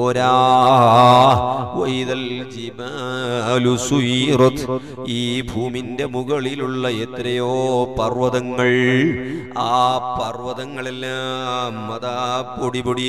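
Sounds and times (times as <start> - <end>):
man chanting melodic recitation: 0.0 - 13.0.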